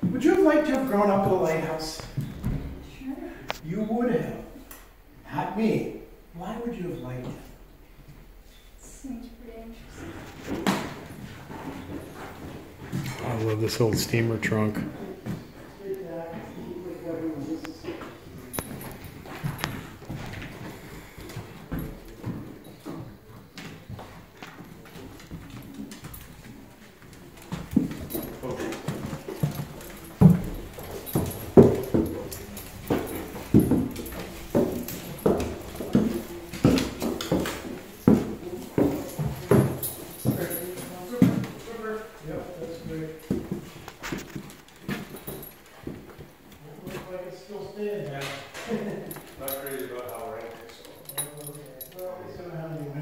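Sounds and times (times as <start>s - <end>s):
footsteps on wooden stairs: 0.0s - 3.1s, 9.9s - 16.9s, 17.6s - 47.2s.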